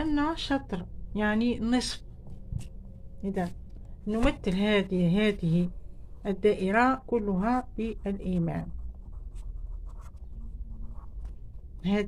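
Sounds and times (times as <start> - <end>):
pencil writing on paper: 7.9 - 11.5.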